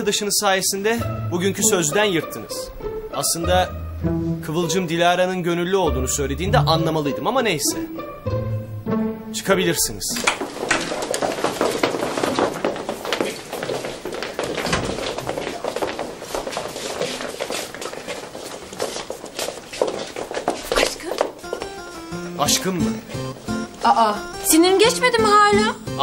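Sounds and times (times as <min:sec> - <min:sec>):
background music: 0:00.0 - 0:11.8, 0:20.8 - 0:26.0
footsteps: 0:09.8 - 0:25.6
chairs and desks scraping: 0:10.0 - 0:22.2.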